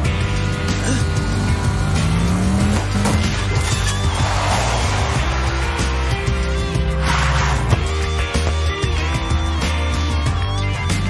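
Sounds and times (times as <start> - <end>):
background music: 0.0 - 11.0
car engine revving: 0.1 - 8.1.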